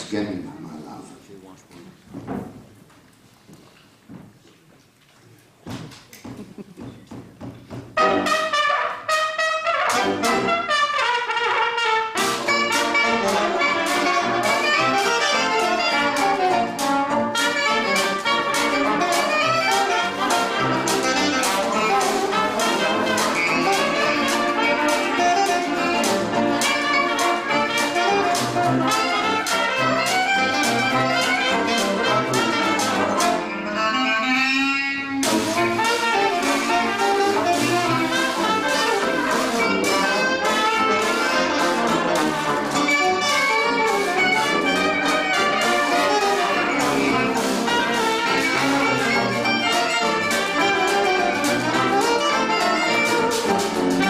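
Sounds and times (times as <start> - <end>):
traditional jazz band playing: 5.7 - 54.0
washboard beat: 12.4 - 33.4, 35.2 - 54.0.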